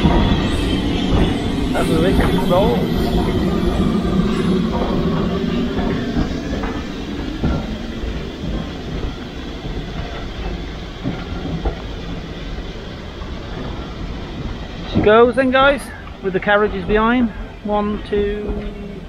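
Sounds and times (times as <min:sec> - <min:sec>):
steam train rumbling: 0:00.0 - 0:19.0
wheel clicks over rail joints: 0:00.0 - 0:19.0.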